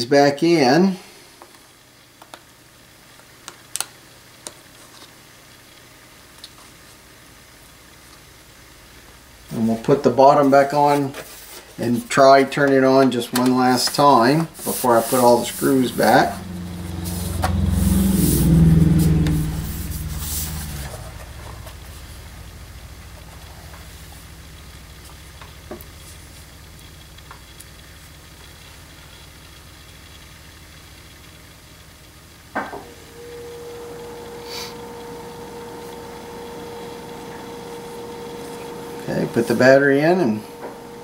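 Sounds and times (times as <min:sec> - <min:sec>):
low steady hum: 0:04.4 - 0:41.0.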